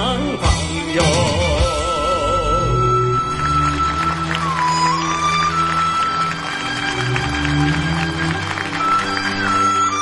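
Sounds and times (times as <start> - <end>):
instrumental song accompaniment: 0.0 - 10.0.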